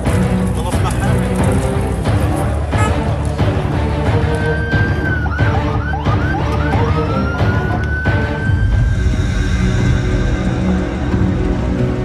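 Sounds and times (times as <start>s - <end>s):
background music: 0.0s - 12.0s
ambulance siren wailing: 4.2s - 9.2s.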